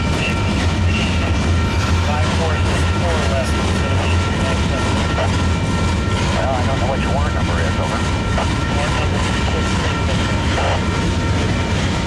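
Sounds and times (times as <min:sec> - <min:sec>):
freight train wheels rumbling: 0:00.0 - 0:12.0.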